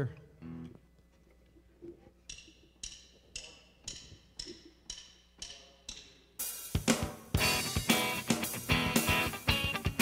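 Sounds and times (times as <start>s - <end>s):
drumstick count-in clicks: 2.2s - 6.5s.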